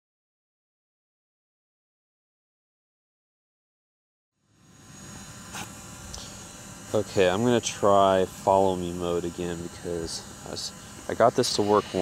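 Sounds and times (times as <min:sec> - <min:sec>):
low hum: 0:04.4 - 0:12.0.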